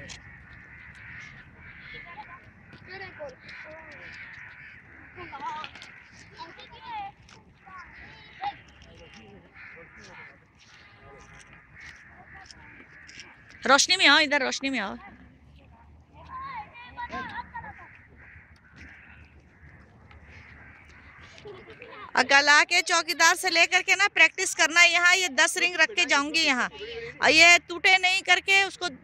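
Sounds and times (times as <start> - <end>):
children chattering: 0.0 - 29.0
children shouting: 16.2 - 18.2.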